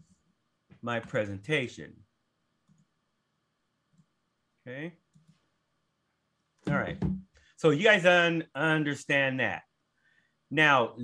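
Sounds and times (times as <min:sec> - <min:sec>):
computer mouse clicks: 0:02.6 - 0:02.9, 0:03.9 - 0:04.1, 0:05.1 - 0:05.4.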